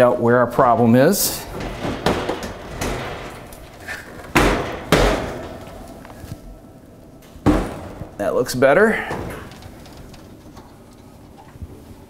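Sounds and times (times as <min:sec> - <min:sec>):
oven door clunking: 0:00.6 - 0:11.4.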